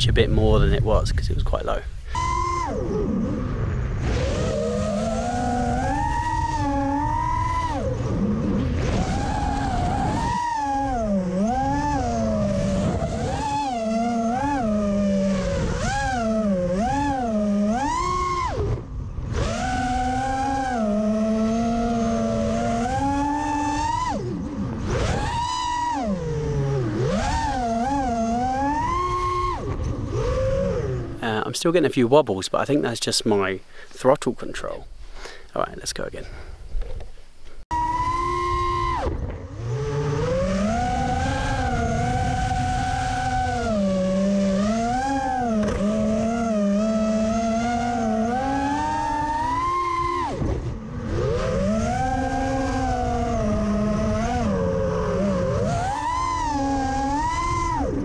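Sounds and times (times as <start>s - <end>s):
drone motors whining: 1.9s - 31.5s, 36.6s - 58.0s.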